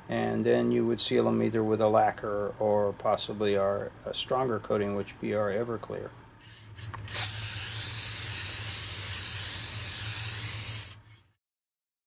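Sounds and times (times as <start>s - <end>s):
aerosol can spraying: 6.4s - 11.1s.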